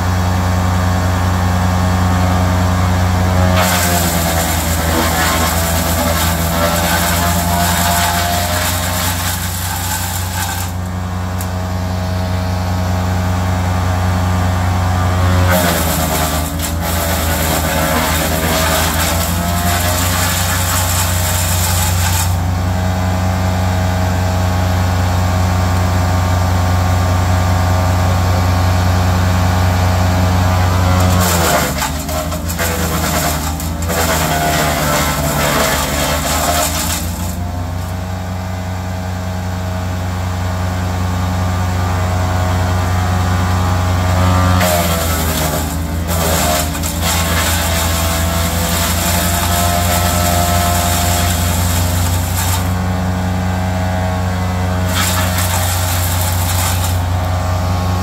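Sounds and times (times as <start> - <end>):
wood chipper chipping branches: 0.0 - 58.0.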